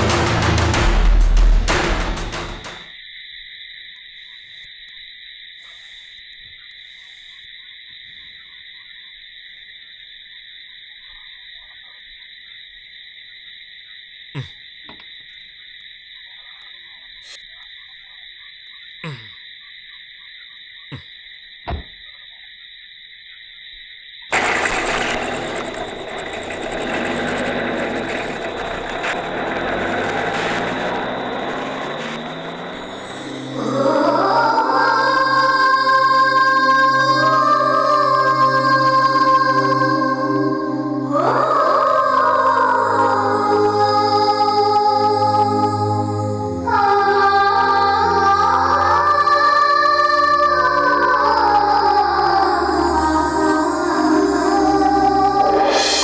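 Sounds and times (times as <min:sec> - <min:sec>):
truck engine starting: 0:00.0 - 0:02.8, 0:24.3 - 0:56.0
night insects droning: 0:00.0 - 0:56.0.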